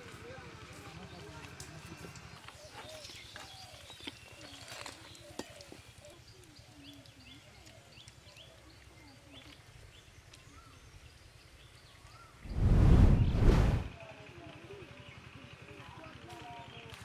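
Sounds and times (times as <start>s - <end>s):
small birds chirping: 0.7s - 12.5s
steady low rumble: 12.5s - 13.9s.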